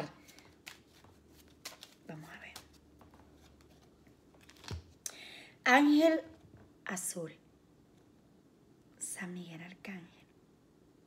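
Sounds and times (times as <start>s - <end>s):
cards being shuffled: 0.0s - 5.0s.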